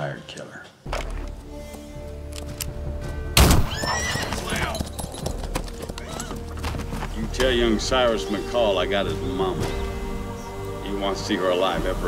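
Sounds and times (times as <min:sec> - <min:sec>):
sustained music: 0:00.0 - 0:12.0
horse whinnying: 0:03.5 - 0:05.0, 0:05.8 - 0:06.6.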